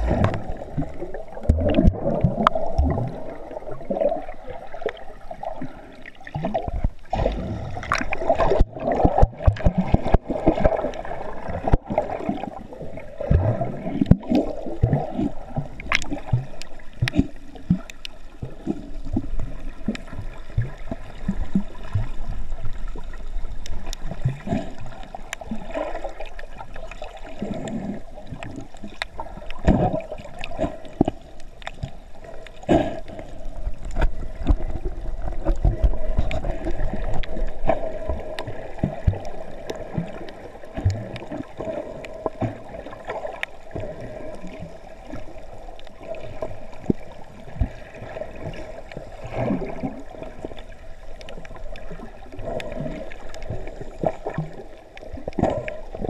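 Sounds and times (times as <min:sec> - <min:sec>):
muffled underwater gurgling: 0:00.0 - 0:56.0.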